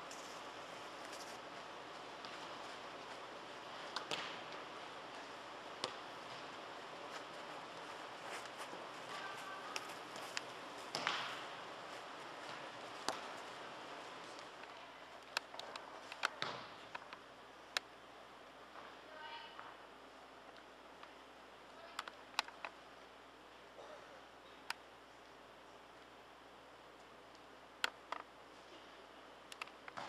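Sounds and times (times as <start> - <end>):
indoor hall noise: 0.0 - 30.0
ball kick thuds: 3.8 - 4.7, 10.8 - 11.6.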